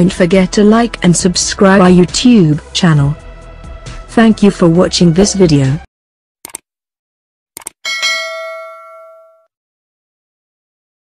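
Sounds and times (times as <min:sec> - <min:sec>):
mouse clicks: 0:07.6 - 0:07.8
notification bell ding: 0:07.8 - 0:09.5.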